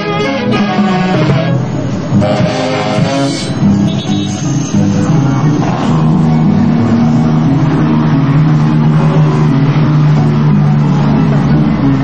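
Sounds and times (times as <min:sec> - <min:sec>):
saxophones holding low notes: 0:00.0 - 0:10.8.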